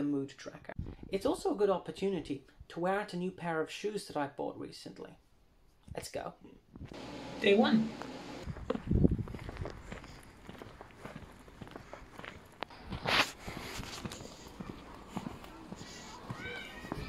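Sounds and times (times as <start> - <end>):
outdoor ambience: 6.7 - 17.0.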